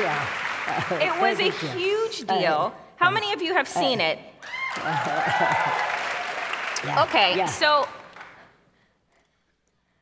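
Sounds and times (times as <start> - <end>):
people cheering: 0.0 - 1.8, 4.4 - 7.6
audience applauding: 0.0 - 2.2, 4.4 - 8.6.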